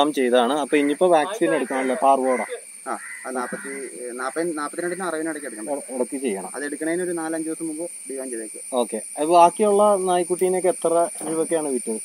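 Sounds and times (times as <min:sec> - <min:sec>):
high-pitched hiss: 0:00.0 - 0:12.0
man talking: 0:00.0 - 0:12.0.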